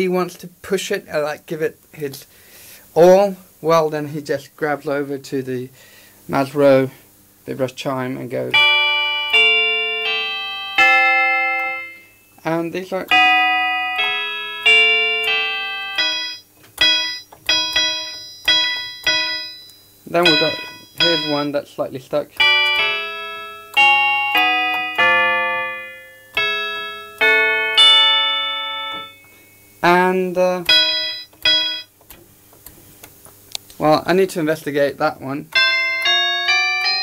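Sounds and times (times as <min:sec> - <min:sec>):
electric chime notes ringing: 0:08.5 - 0:32.0, 0:35.5 - 0:37.0.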